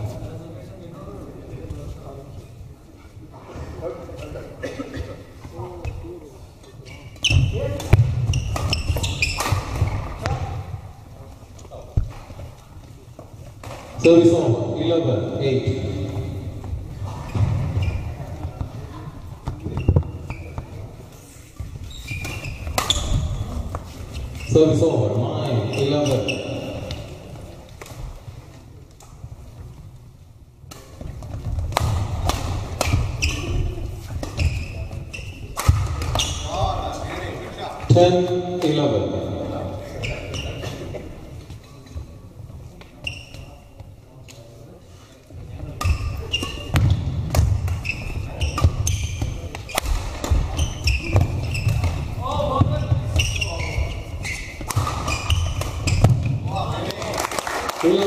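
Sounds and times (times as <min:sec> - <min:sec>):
shoe squeaks and hall noise: 0:00.0 - 0:57.0
rackets hitting shuttlecock: 0:07.2 - 0:10.7, 0:22.2 - 0:23.9, 0:30.7 - 0:34.6, 0:35.4 - 0:36.5, 0:45.8 - 0:53.7, 0:54.4 - 0:56.6.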